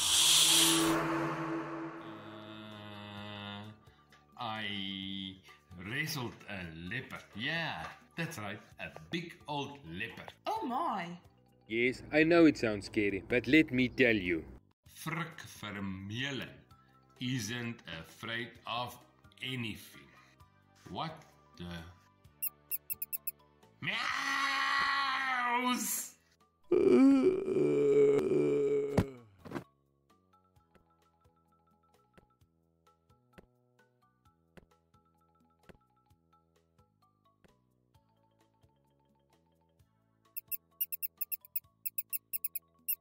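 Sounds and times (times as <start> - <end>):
high mouse squeaks: 22.4 - 23.3, 40.4 - 43.0
man screaming in fright: 23.8 - 25.8, 26.7 - 29.0
man wailing cry: 26.7 - 29.0.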